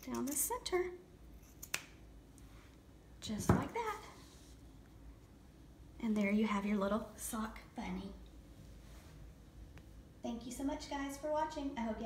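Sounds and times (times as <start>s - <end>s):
scissors blades clicking: 1.4s - 1.9s.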